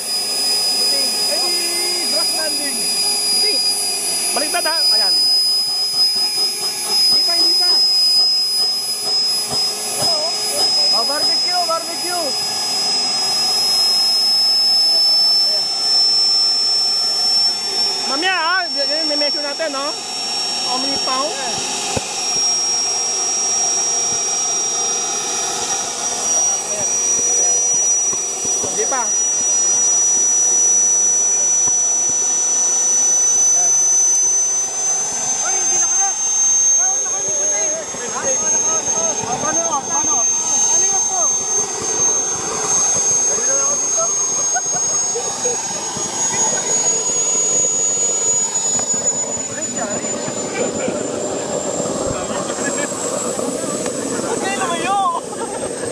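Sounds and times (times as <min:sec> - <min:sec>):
model jet turbine whining: 0:00.0 - 0:55.9.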